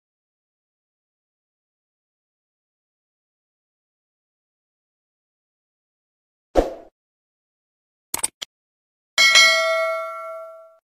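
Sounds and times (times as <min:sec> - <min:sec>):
notification bell chime: 0:09.2 - 0:10.8.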